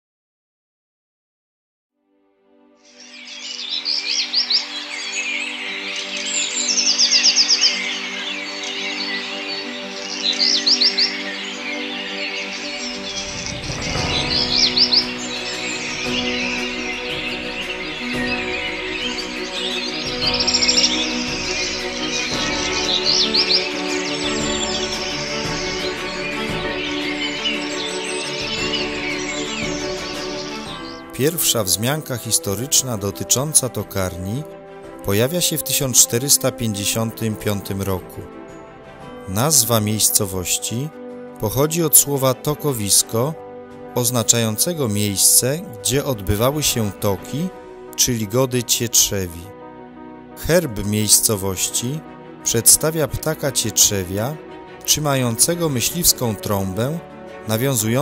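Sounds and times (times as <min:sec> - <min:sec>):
soft background music: 0:02.0 - 0:58.0
birds singing: 0:02.8 - 0:58.0.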